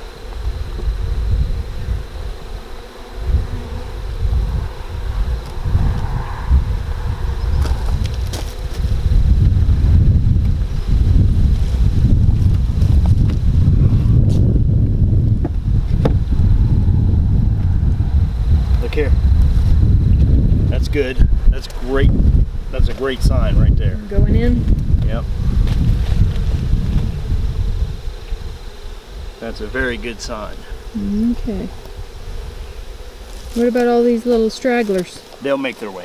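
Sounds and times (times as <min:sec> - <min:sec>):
wind rumble on microphone: 0:00.0 - 0:35.0
honeybees buzzing: 0:00.0 - 0:36.0.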